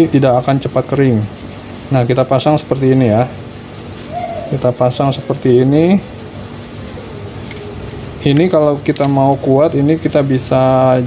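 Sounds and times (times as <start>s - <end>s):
steady background noise: 0.0s - 11.0s.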